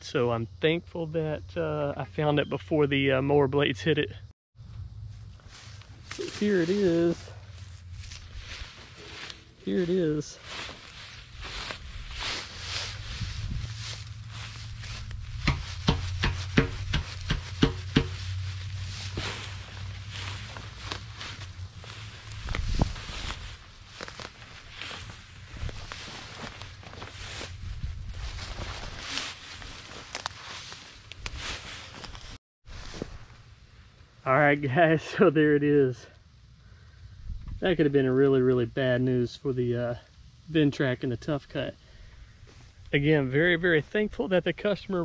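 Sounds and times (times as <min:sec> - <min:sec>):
low hum: 0:04.2 - 0:29.8
dry grass rustling underfoot: 0:05.1 - 0:34.2, 0:42.1 - 0:43.0
dull thump: 0:15.3 - 0:18.2.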